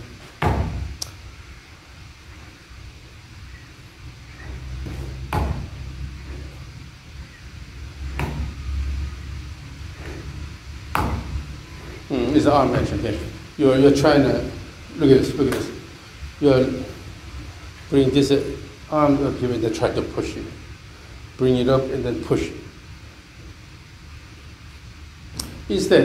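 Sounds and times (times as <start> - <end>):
low steady room hum: 0.0 - 26.0
sharp knocks: 0.4 - 1.0, 4.8 - 6.5, 8.1 - 8.6, 10.9 - 11.5.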